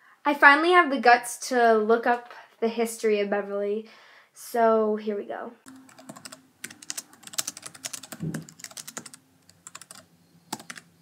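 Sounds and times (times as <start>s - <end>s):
laptop keyboard typing: 5.7s - 10.9s.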